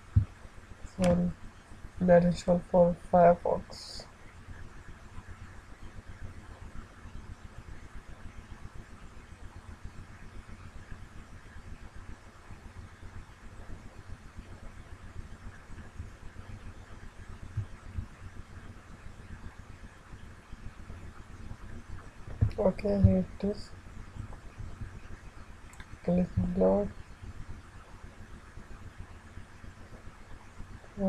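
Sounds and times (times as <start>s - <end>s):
low room noise rumble: 0.0s - 31.0s.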